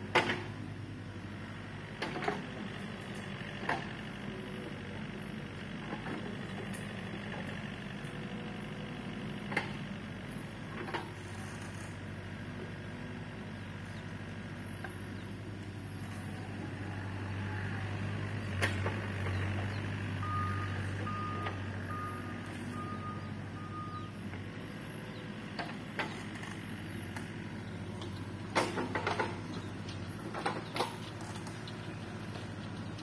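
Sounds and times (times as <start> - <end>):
diesel engine running: 0.0 - 33.0
short reversing alarm beeps: 20.2 - 24.2.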